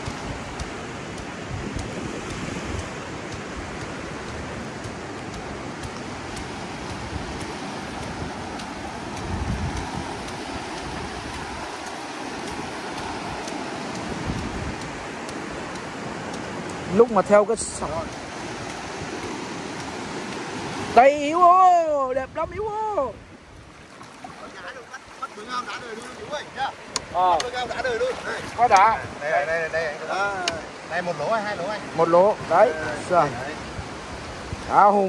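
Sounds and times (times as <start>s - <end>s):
surf washing over sandy beach: 0.0s - 35.0s.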